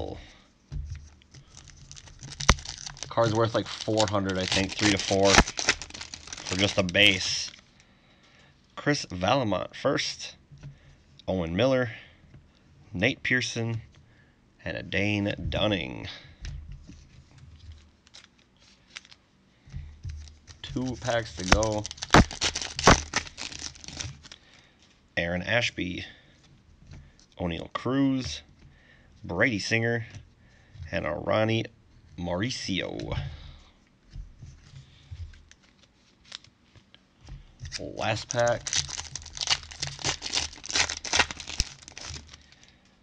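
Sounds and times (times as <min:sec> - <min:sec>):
foil wrapper crackling: 0:01.4 - 0:07.8, 0:17.7 - 0:19.2, 0:20.2 - 0:24.6, 0:37.7 - 0:42.7
foil wrapper ripping: 0:01.5 - 0:07.6, 0:20.7 - 0:24.4, 0:37.7 - 0:42.6.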